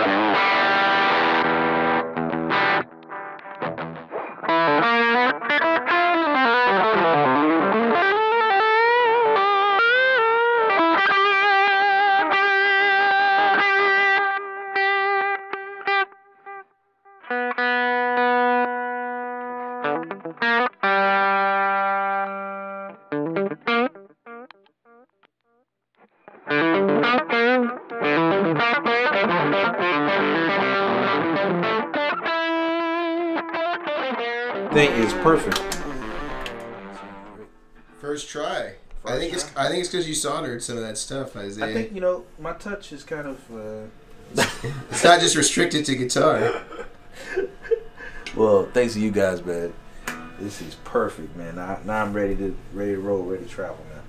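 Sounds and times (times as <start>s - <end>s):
electric guitar with effects: 0.0s - 38.0s, 46.2s - 51.4s.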